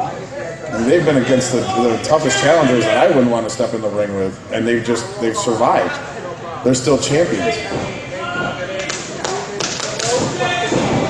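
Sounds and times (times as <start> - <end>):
voices talking: 0.0 - 11.0.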